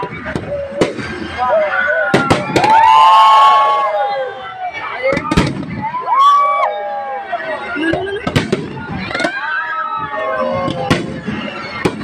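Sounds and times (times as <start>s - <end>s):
loud sharp bang: 5.1s - 5.8s
fireworks bursting: 7.9s - 9.4s.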